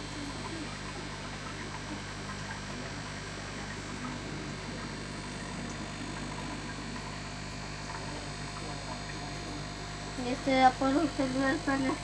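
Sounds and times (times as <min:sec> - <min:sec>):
air bubbling in tubes: 0:00.0 - 0:12.0
aquarium air pumps humming: 0:00.0 - 0:12.0.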